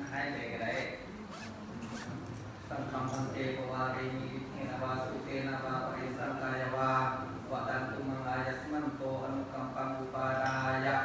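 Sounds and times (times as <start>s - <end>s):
zipper rasp: 0.6s - 2.3s.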